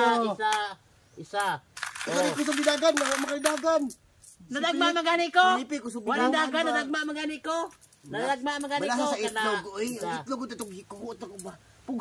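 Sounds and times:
coins clinking: 0:01.4 - 0:04.4.

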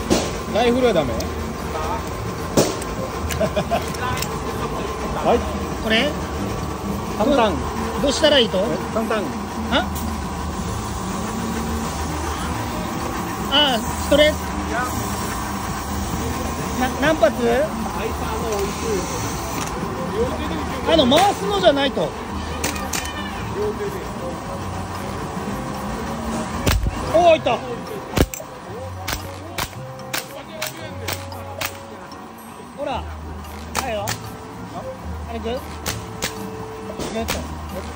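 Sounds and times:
street market hubbub: 0:00.0 - 0:37.9
toy air gun cracks: 0:28.2 - 0:31.9.

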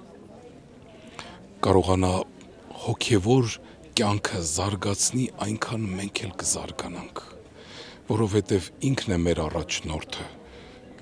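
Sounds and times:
man speaking: 0:01.6 - 0:07.3, 0:08.1 - 0:10.4.

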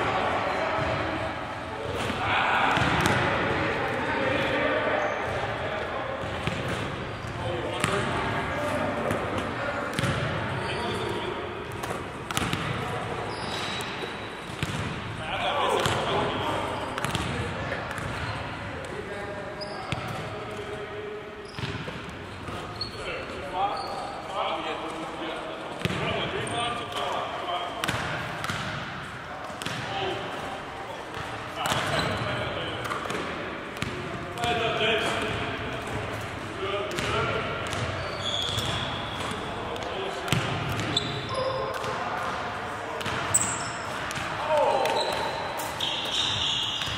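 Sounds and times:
basketballs bouncing on wooden floor: 0:09.9 - 0:10.3, 0:11.7 - 0:12.8, 0:14.5 - 0:14.9, 0:17.0 - 0:18.3, 0:36.9 - 0:41.2, 0:43.0 - 0:43.4.

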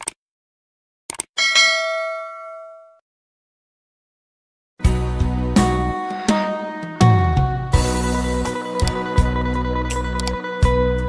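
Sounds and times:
notification bell ding: 0:01.4 - 0:03.0.

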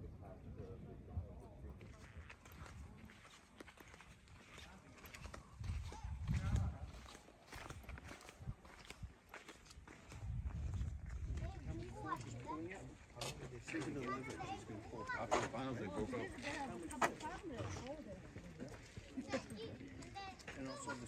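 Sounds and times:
faint voices: 0:00.0 - 0:10.2
footsteps on pavement: 0:01.8 - 0:21.0
low rumbling on microphone: 0:10.1 - 0:11.9.

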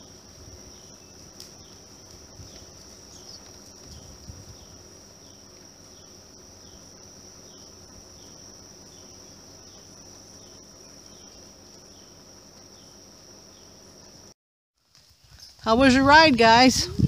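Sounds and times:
short insect chirps: 0:00.0 - 0:14.4
insects buzzing: 0:00.0 - 0:17.0.

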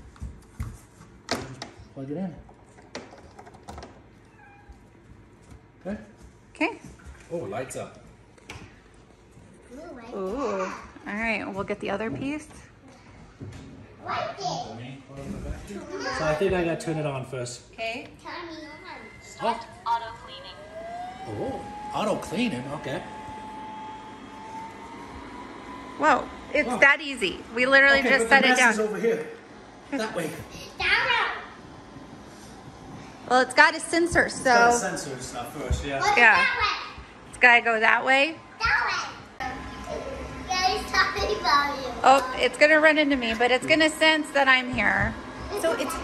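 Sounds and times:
cat meowing faintly: 0:04.2 - 0:04.8
robot vacuum whirring: 0:18.6 - 0:30.8.

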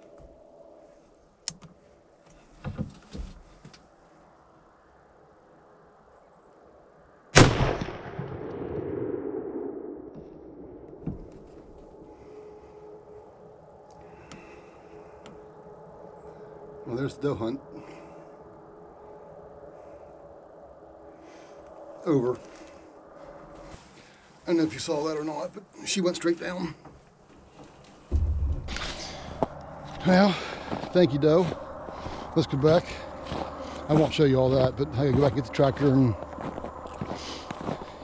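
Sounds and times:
faint rustling and handling: 0:22.3 - 0:25.8
man's voice: 0:33.9 - 0:36.2.

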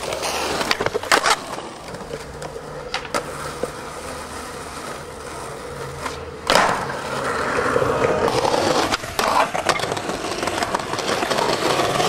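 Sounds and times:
skateboard clacks: 0:00.0 - 0:12.0
skateboard wheels rolling on concrete: 0:00.0 - 0:12.0.

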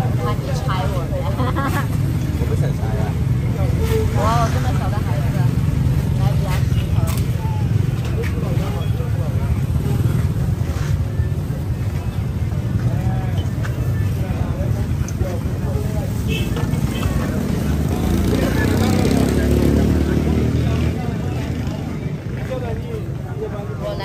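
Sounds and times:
people talking: 0:00.0 - 0:24.0.

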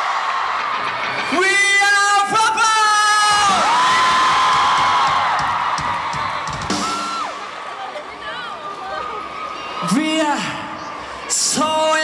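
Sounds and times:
crowd screaming: 0:00.0 - 0:12.0
live rock band playing: 0:00.5 - 0:08.0
drum kit hits: 0:03.3 - 0:07.5.

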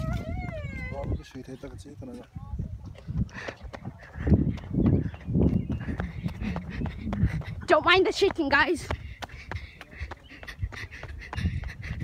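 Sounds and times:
running footfalls on pavement: 0:00.0 - 0:12.0.

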